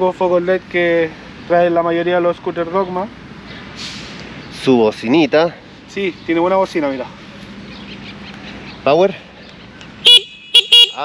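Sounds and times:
scooter horn beeping: 10.0s - 11.0s.

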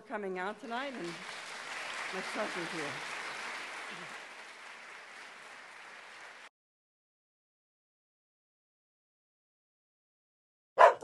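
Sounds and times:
audience applauding: 0.6s - 6.5s.

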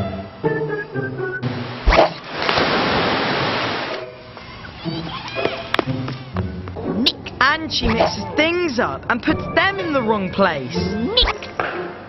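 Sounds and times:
heavy splashing of pool water: 1.8s - 4.0s.

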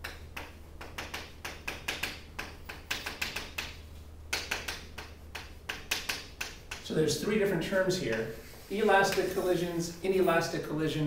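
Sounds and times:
low steady hum: 0.0s - 11.0s
chalk writing on a chalkboard: 4.4s - 6.8s, 8.1s - 9.5s.

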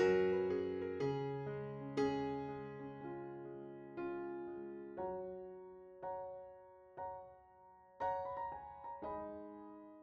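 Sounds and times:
soft solo piano music: 0.0s - 10.0s.

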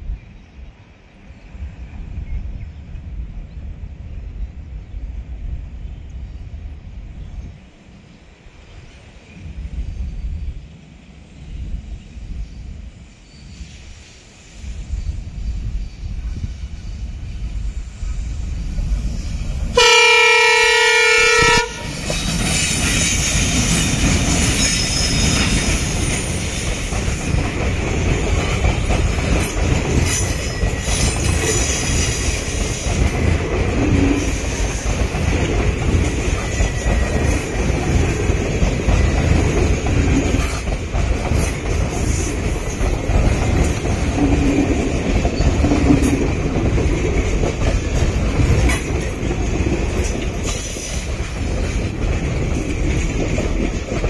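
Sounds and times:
train rumbling past: 0.0s - 54.0s
locomotive horn blast: 19.8s - 22.0s
wheels clacking over rail joints: 21.4s - 54.0s.

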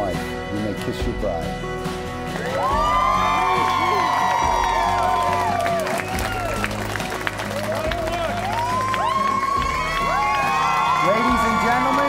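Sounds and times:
background music: 0.0s - 12.0s
guests cheering and whooping: 2.4s - 12.0s.

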